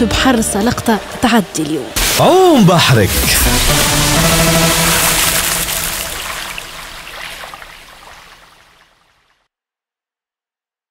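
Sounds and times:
rushing water: 0:00.6 - 0:09.4
held musical chord: 0:03.3 - 0:06.1.

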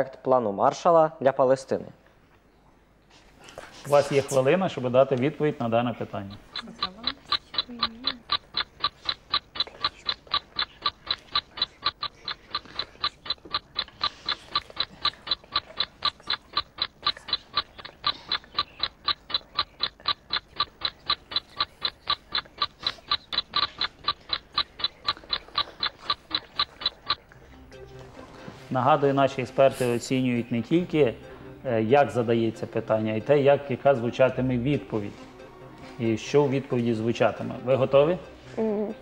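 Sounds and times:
clock ticking: 0:03.9 - 0:38.6.

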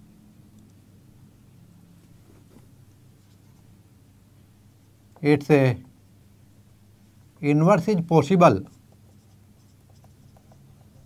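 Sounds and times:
marker squeaking on whiteboard: 0:08.6 - 0:11.0.

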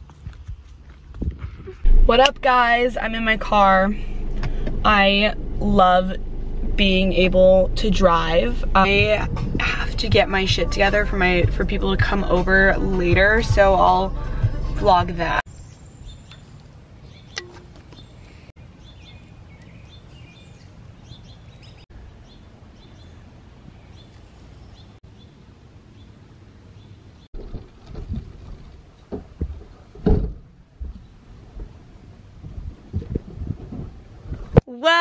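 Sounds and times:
low thumps: 0:00.0 - 0:15.4, 0:27.4 - 0:34.6
birds chirping: 0:15.5 - 0:27.4
rustles: 0:25.9 - 0:34.6.

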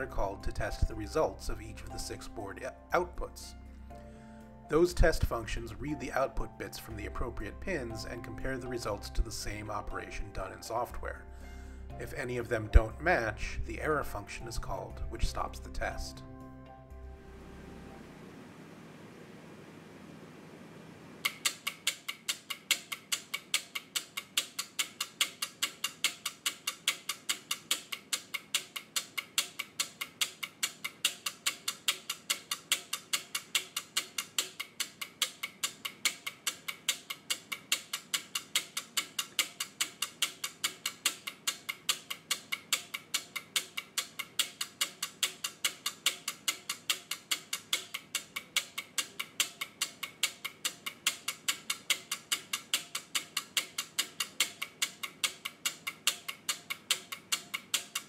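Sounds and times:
relays clicking fast: 0:21.2 - 0:58.0.

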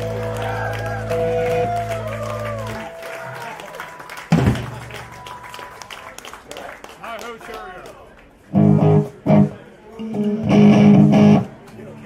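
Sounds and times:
light applause: 0:00.0 - 0:09.4
crowd voices: 0:00.0 - 0:12.0.

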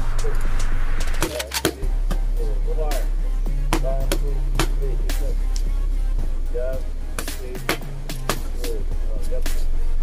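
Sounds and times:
background music with bass: 0:00.0 - 0:10.0.

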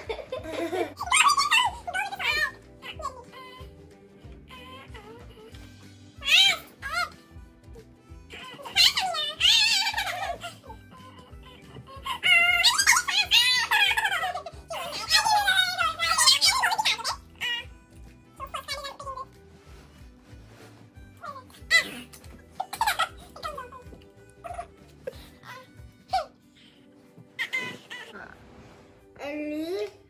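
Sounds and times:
girls giggling: 0:00.0 - 0:01.8
background music: 0:00.0 - 0:30.0.

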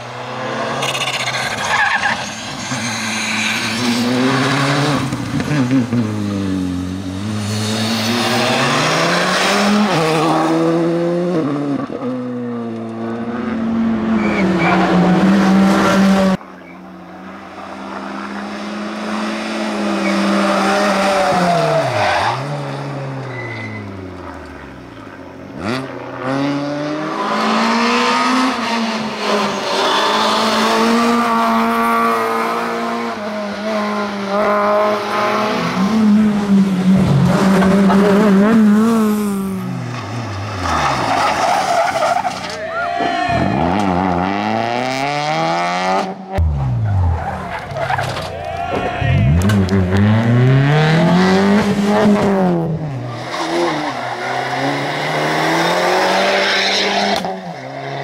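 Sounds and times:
rally car engines revving: 0:00.0 - 0:42.6, 0:43.2 - 0:58.0.

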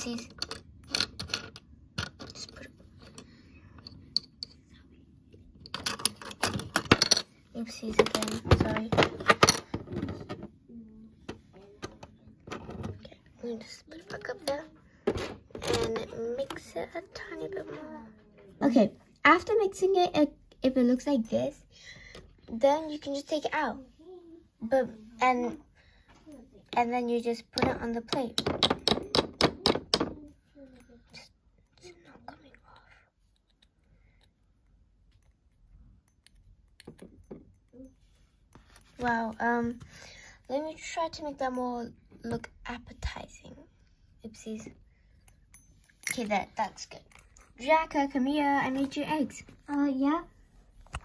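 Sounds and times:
plastic toys clicking on wood: 0:00.0 - 0:04.6, 0:27.5 - 0:30.3.

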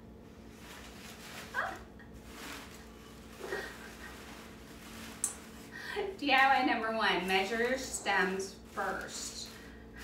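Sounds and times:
dog whining: 0:01.5 - 0:02.0.

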